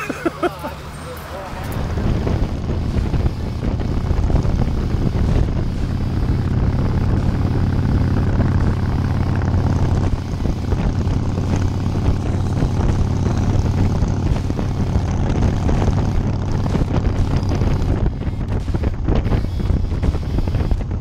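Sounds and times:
motorcycle engine running: 0:00.0 - 0:21.0
wind noise on microphone: 0:01.5 - 0:21.0.

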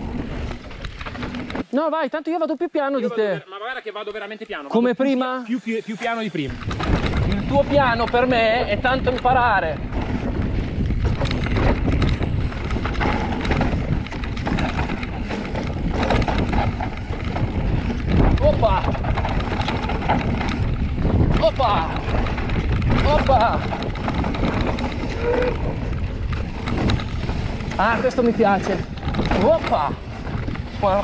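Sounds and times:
wind buffeting microphone: 0:00.0 - 0:01.6, 0:06.4 - 0:31.0
bike rattling over ground: 0:00.0 - 0:02.1, 0:06.5 - 0:31.0.

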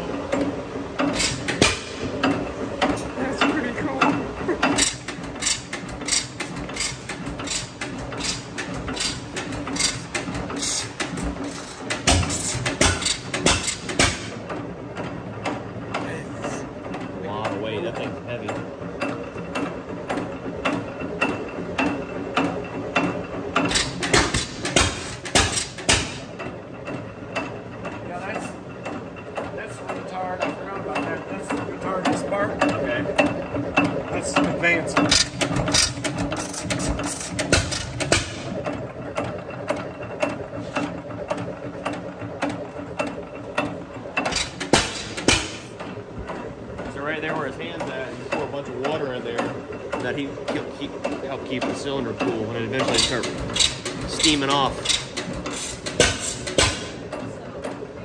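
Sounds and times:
stationary engine clicking: 0:00.0 - 0:58.0.

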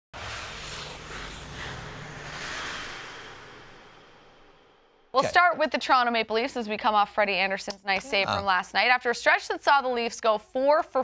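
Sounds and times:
whooshing noise: 0:00.1 - 0:05.2
low rumble: 0:00.2 - 0:05.1.

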